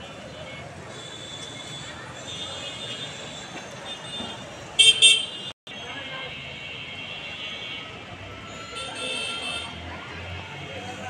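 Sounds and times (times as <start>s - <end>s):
congested street din: 0.0s - 11.0s
vehicle horn honks: 4.8s - 5.5s.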